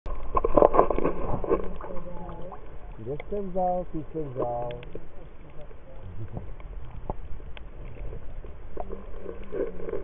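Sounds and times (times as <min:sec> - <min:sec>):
low steady hum: 0:00.1 - 0:10.0
underwater sloshing and bubbling: 0:00.1 - 0:10.0.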